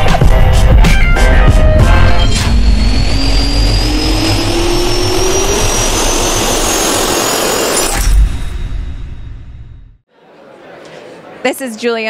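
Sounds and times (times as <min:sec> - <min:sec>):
jet engine spooling up: 0:01.0 - 0:09.6.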